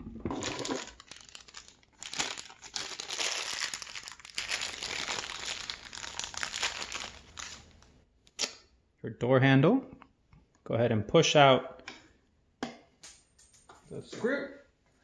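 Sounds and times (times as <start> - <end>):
plastic bag crinkling: 0.2 - 8.0.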